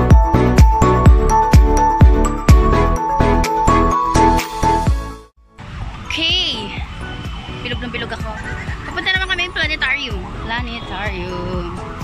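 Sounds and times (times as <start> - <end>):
background music: 0.0 - 5.3, 6.1 - 12.0.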